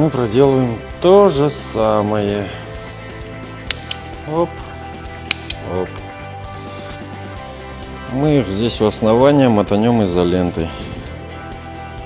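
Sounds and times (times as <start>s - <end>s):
wire stripper clicking: 3.6s - 5.8s.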